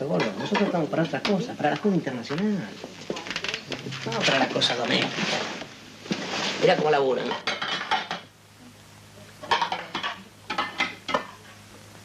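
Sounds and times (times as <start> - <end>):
dishes clinking and clattering: 0.1 - 1.4, 7.3 - 8.3, 9.4 - 11.5.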